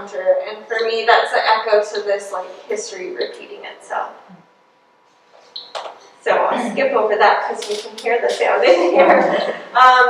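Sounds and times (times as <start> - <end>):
woman talking: 0.0 - 4.2, 6.2 - 10.0.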